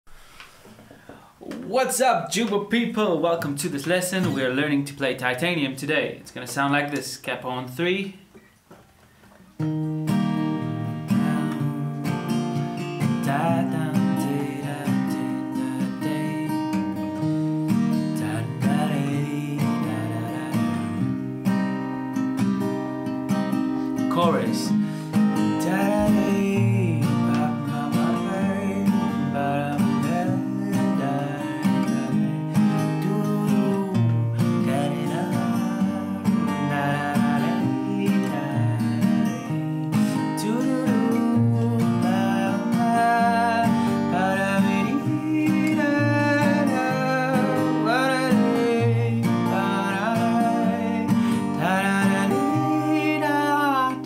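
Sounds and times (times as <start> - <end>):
acoustic guitar strumming: 0.1 - 54.0
man singing: 10.6 - 17.0, 17.9 - 21.1, 24.1 - 54.0.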